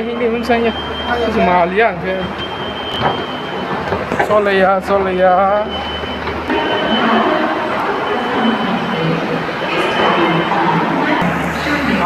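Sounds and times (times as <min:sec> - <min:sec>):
escalator mechanical hum: 0:00.0 - 0:12.0.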